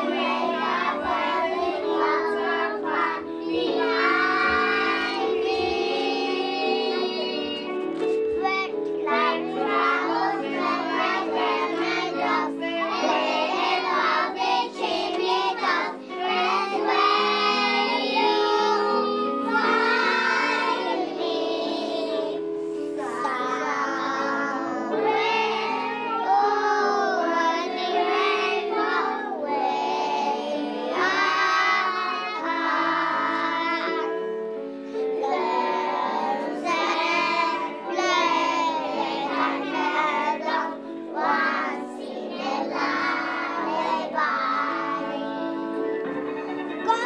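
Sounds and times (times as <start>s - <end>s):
children singing in unison: 0.0s - 47.0s
instrumental accompaniment: 0.0s - 47.0s.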